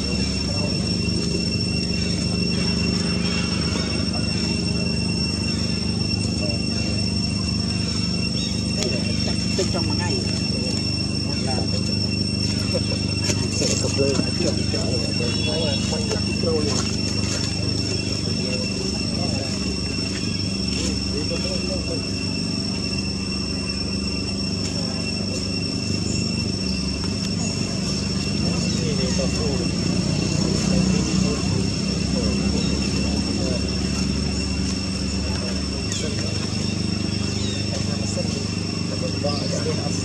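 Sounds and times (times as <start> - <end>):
faint indistinct voices: 0.0 - 40.0
steady low hum: 0.0 - 40.0
thin high steady tones: 0.0 - 40.0.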